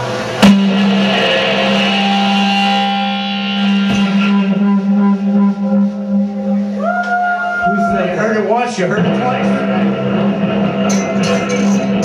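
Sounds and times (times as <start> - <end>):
electric instruments droning note: 0.0 - 12.0
tone sliding up: 0.4 - 8.2.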